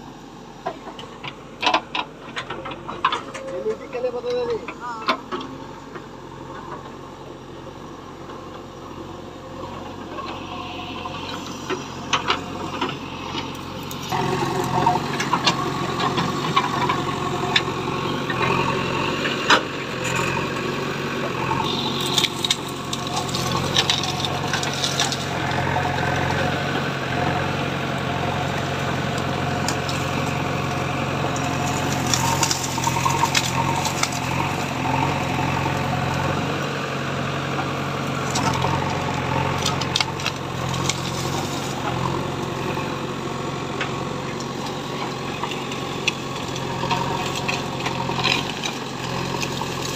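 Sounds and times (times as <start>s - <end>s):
backhoe diesel engine running: 0.0s - 49.9s.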